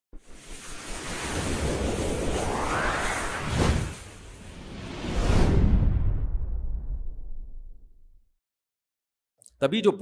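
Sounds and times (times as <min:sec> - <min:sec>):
whooshing riser: 0:00.2 - 0:07.8.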